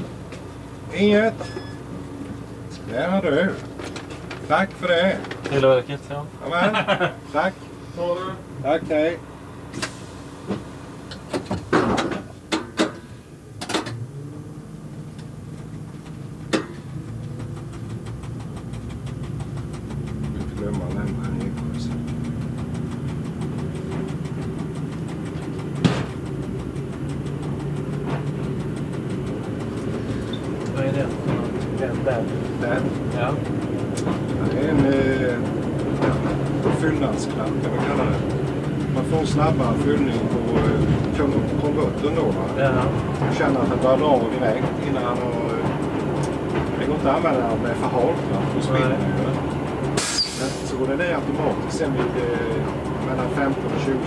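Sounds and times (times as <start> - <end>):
railcar diesel engine pulling away: 0.0 - 4.6, 5.2 - 54.0
sharp clicks: 15.1 - 54.0.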